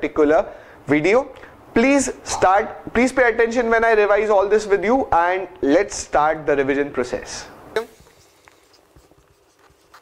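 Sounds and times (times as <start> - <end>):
marker pen writing on whiteboard: 7.9 - 10.0.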